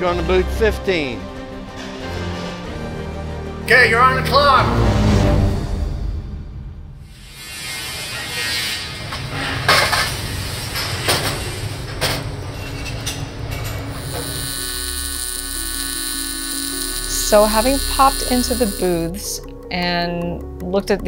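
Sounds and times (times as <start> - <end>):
welding arc buzzing: 13.9 - 19.4.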